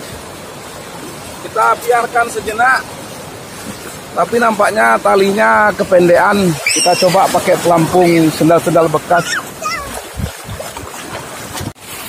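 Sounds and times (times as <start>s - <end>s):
sea surf: 0.0s - 12.0s
wind buffeting microphone: 5.4s - 11.8s.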